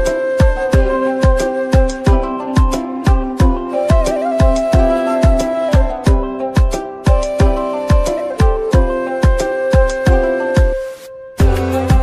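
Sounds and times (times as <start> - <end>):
music with deep beat: 0.0 - 12.0.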